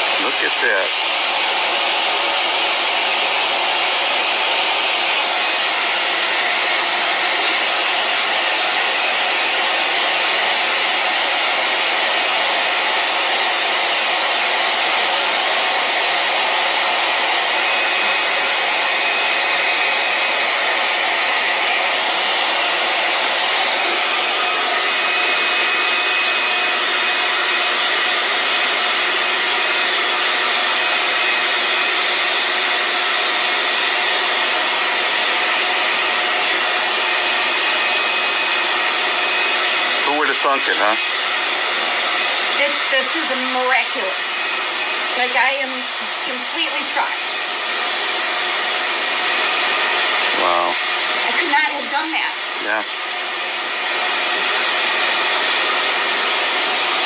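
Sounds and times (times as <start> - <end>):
blower fan air rush: 0.0 - 57.0.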